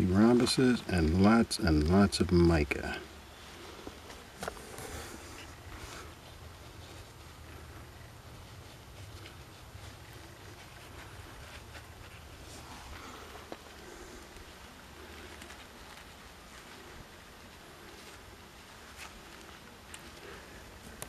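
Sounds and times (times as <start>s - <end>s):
low steady rumble: 0.0s - 21.0s.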